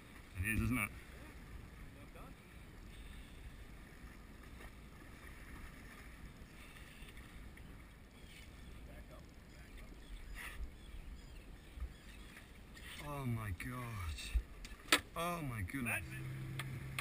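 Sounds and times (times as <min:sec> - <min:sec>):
faint water noise: 0:00.0 - 0:17.0.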